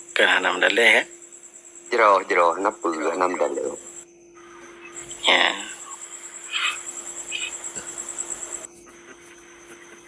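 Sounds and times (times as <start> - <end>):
cricket trilling: 0.0 - 10.0
background hiss: 4.5 - 9.8.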